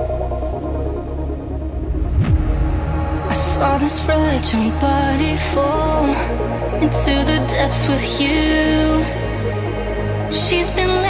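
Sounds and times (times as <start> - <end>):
deep sustained bass rumble: 0.0 - 7.4
swooshing sweep effect: 1.7 - 5.0.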